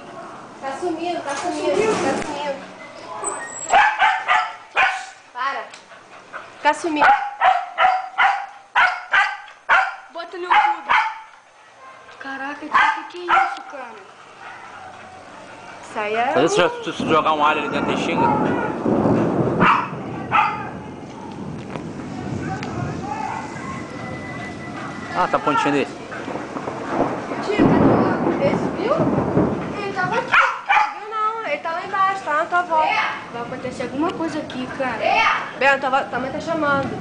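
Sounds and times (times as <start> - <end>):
dog barking: 3.7 - 5.2, 6.9 - 12.1, 12.7 - 13.8, 14.4 - 15.1, 17.6 - 18.8, 19.6 - 21.4, 23.2 - 23.9, 30.3 - 31.1.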